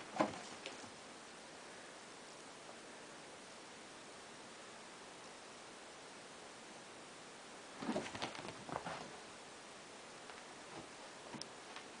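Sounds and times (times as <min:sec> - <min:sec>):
steady hiss: 0:00.0 - 0:12.0
cats scuffling on sofa cushions: 0:07.8 - 0:09.2.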